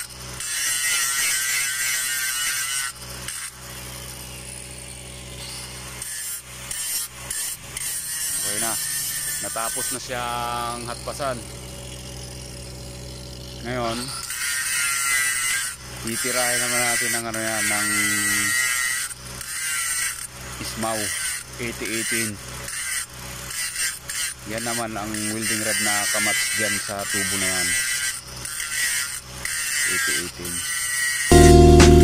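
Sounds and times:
angle grinder grinding steel: 0.0 - 32.0.

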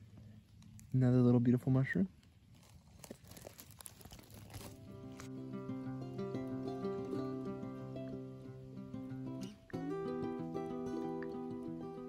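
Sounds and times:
dry leaves rustling: 0.0 - 11.0
acoustic guitar music: 4.7 - 12.0.

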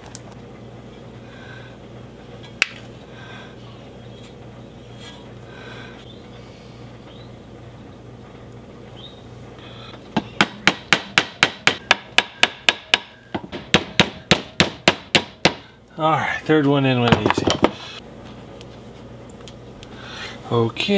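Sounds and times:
faint hum: 0.0 - 20.9.

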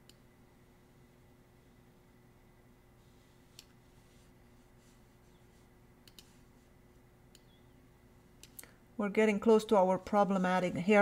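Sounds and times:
computer mouse clicks: 3.5 - 3.8, 6.0 - 6.4, 7.3 - 7.6, 8.4 - 8.7.

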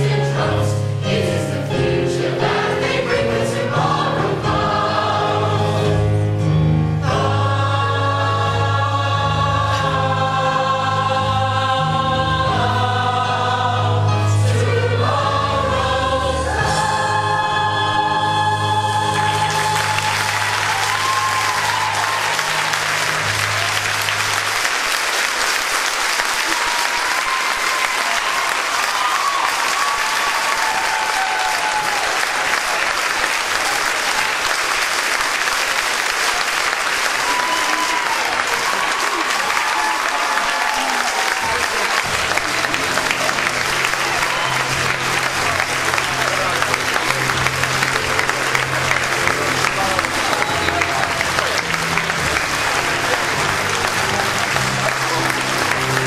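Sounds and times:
audience applauding: 16.5 - 56.0
people cheering and calling out: 17.0 - 24.1, 26.4 - 34.5, 37.0 - 56.0.

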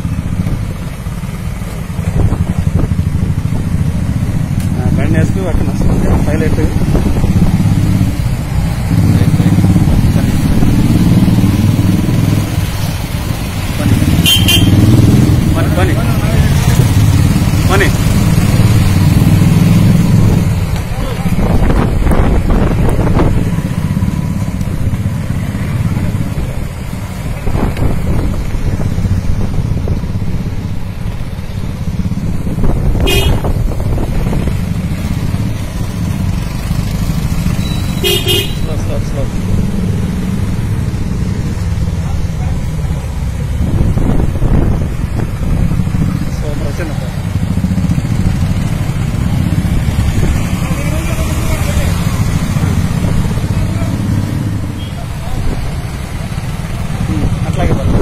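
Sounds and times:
motorcycle engines rumbling: 0.0 - 58.0
short horn toots: 14.2 - 14.8.

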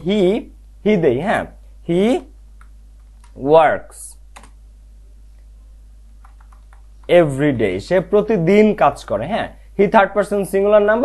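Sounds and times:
faint steady low hum: 0.0 - 11.0
computer keyboard keystrokes: 2.6 - 3.4, 4.3 - 4.6, 6.2 - 7.1.

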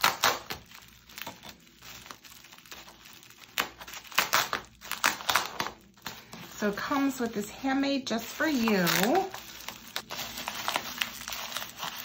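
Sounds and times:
bubble wrap crinkling: 0.0 - 12.0.

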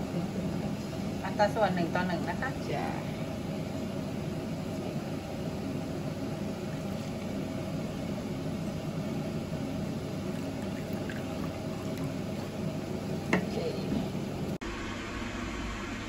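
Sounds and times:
low background hum: 0.0 - 16.0
liquid pouring into ceramic bowl: 10.2 - 12.8.

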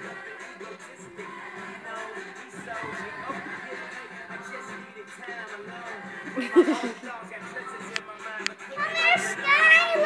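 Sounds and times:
children playing: 8.6 - 10.0
child calling out sing-song: 8.7 - 10.0.

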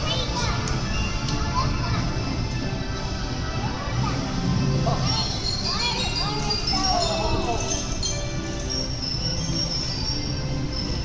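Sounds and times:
carousel music: 0.0 - 11.0
children calling out: 4.8 - 8.8.

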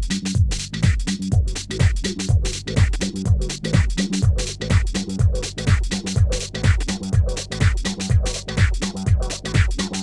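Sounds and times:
bass line: 0.0 - 10.0
hi-hats: 0.0 - 10.0
kick drum: 0.0 - 10.0.

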